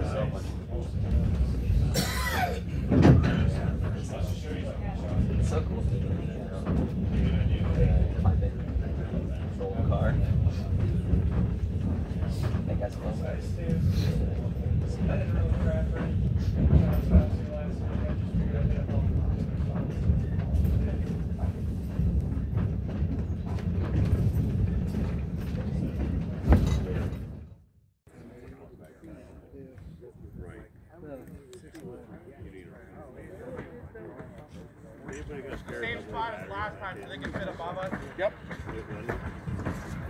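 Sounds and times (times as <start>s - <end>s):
train coaches rumbling on track: 0.0s - 27.5s, 33.6s - 40.0s
train rumbling past: 35.5s - 40.0s.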